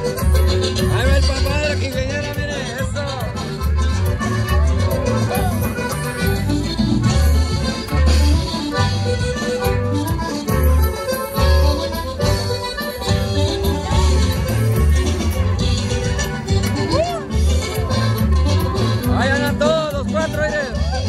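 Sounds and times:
accordion melody: 0.0 - 21.0
guitar: 0.0 - 21.0
steady bass beat: 0.0 - 21.0.

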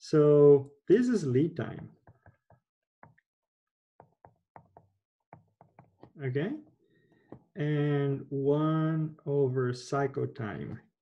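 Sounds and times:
stylus tapping on a screen: 1.8 - 3.2, 4.0 - 7.5.

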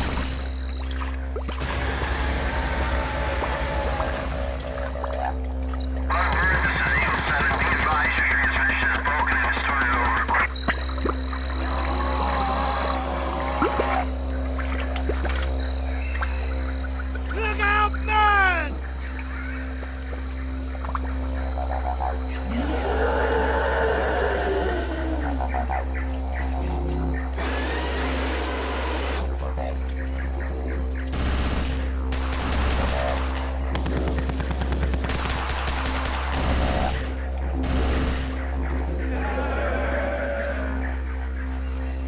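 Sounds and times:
background music: 0.0 - 42.0
dinosaur roar: 1.6 - 5.3, 11.6 - 14.1, 22.4 - 25.8, 39.0 - 41.0
rapid gunfire: 6.2 - 10.5, 31.1 - 38.4.

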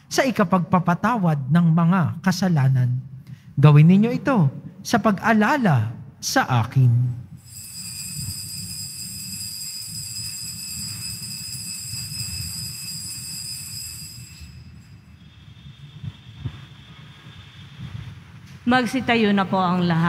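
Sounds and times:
bell ringing: 7.4 - 15.2.

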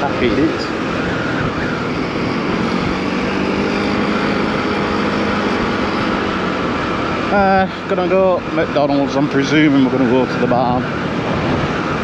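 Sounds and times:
wind rushing over microphone: 0.0 - 7.3, 10.7 - 12.0
motorcycle engine: 0.0 - 12.0.

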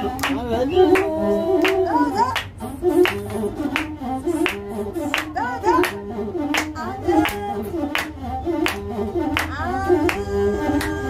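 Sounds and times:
hand-clapping: 0.0 - 10.2, 10.8 - 11.0
bowed fiddle melody: 0.0 - 11.0
person singing with gliding notes: 0.0 - 11.0.

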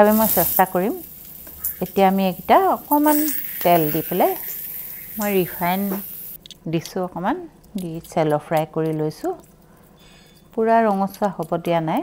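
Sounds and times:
oil sizzling in a frying pan: 0.0 - 6.4.

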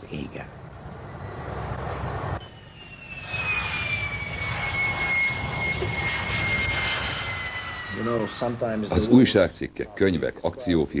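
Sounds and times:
jet engine rumble and whine: 0.0 - 11.0.

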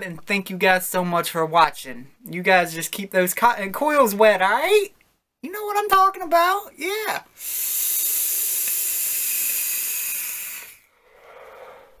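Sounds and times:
hiss of vapor through coils: 7.3 - 12.0
breathy exhale: 7.4 - 12.0.

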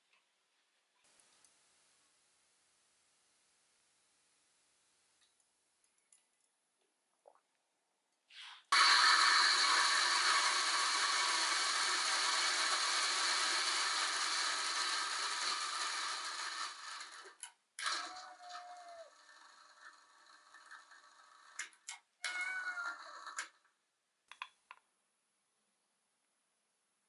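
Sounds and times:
kitten meowing: 22.2 - 22.9.

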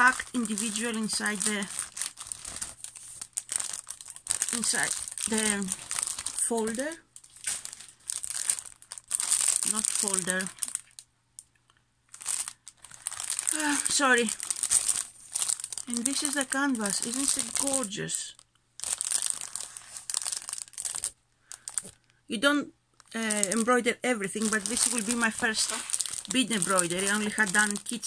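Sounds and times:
plastic film crinkling: 0.0 - 11.5, 12.1 - 22.1, 23.0 - 28.0.

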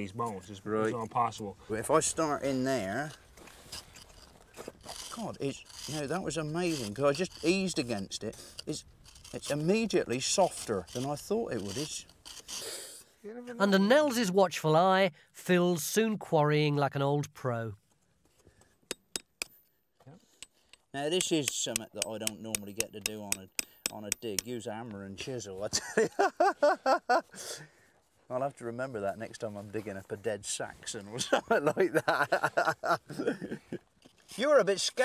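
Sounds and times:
hand tool scraping soft rock: 2.2 - 13.1, 18.3 - 24.6, 33.9 - 35.0
small scratches: 3.1 - 12.8, 34.0 - 34.9
hammer tapping metal chisel on rock: 18.6 - 24.6.

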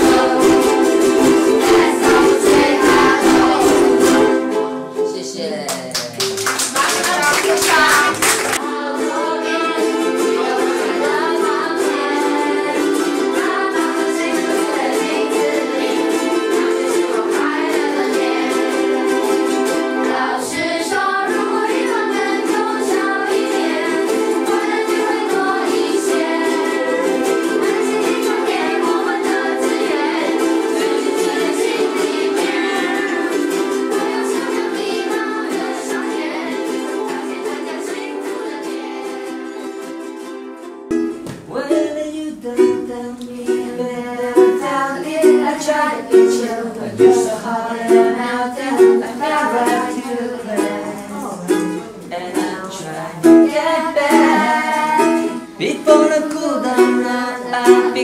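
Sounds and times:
single ukulele strummed: 0.0 - 5.1, 8.6 - 58.0
many ukuleles strumming: 0.0 - 58.0
man singing: 41.4 - 58.0.

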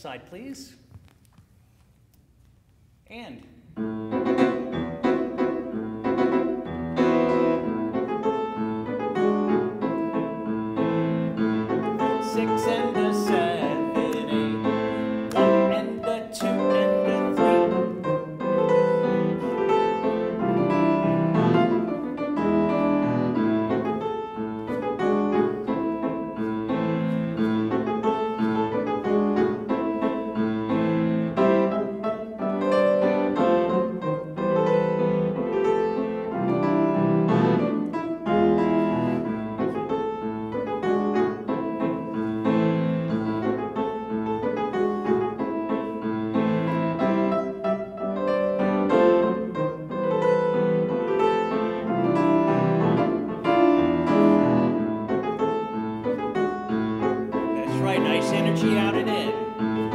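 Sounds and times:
grand piano classical music: 0.9 - 59.9.

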